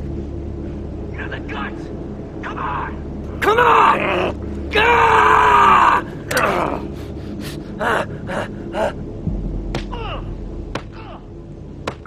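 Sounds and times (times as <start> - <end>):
man crying out in pain: 3.4 - 9.2
man groaning and gasping: 5.9 - 9.1.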